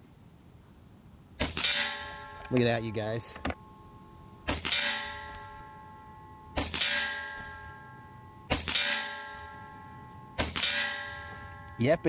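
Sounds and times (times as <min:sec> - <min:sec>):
air rifle shots: 0:01.4 - 0:02.7, 0:04.4 - 0:05.6, 0:06.6 - 0:07.6, 0:08.5 - 0:09.5, 0:10.4 - 0:11.2
pellet ringing on metal target: 0:01.4 - 0:12.0.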